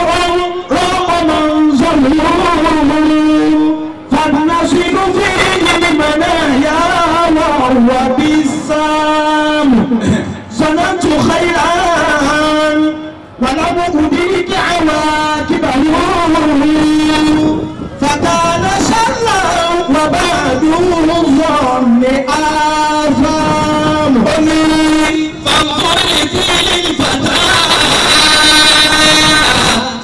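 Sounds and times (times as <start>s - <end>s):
man chanting into microphone: 0.0s - 30.0s.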